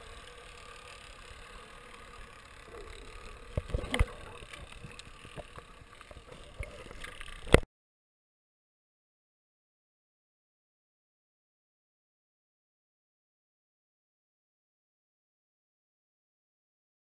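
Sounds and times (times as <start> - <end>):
muffled underwater water noise: 2.6 - 7.6.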